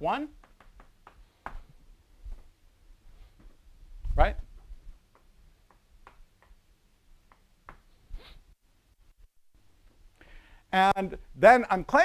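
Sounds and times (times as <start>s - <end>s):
chalk tapping on blackboard: 0.3s - 1.7s, 5.1s - 6.6s, 7.2s - 7.9s.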